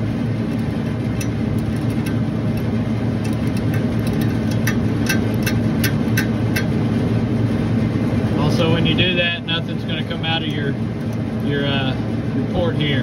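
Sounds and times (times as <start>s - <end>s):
refrigeration machinery humming: 0.0s - 13.0s
ratchet wrench clicking: 3.2s - 6.7s.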